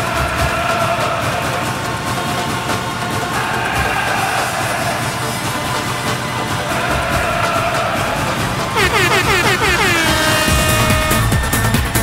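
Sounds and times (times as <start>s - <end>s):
dance music beat: 8.6s - 11.5s
synthesizer falling pitch swoops: 8.8s - 11.3s.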